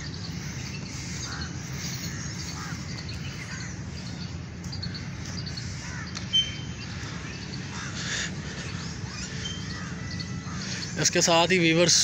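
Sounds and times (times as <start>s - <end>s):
birds calling: 0.0s - 12.0s
steady low hum: 0.0s - 12.0s.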